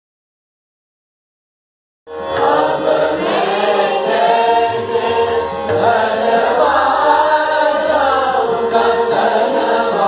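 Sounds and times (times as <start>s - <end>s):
group singing in unison: 2.1s - 10.0s.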